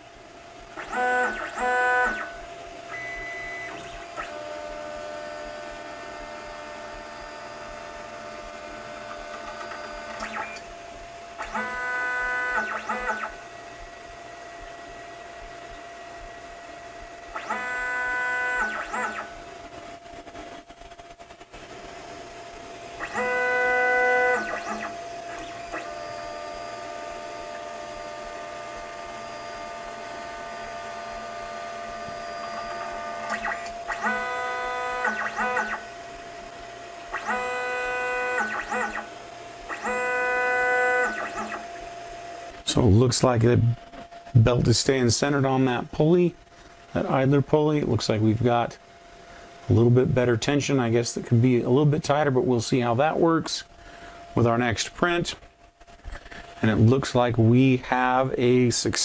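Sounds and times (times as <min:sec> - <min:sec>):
printer humming: 0:00.0 - 0:46.3
stepper motor whine: 0:00.0 - 0:46.3.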